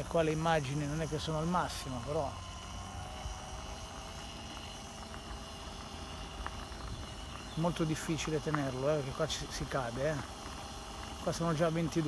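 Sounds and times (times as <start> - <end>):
scooter wheels rumbling on paving: 0.0 - 12.0.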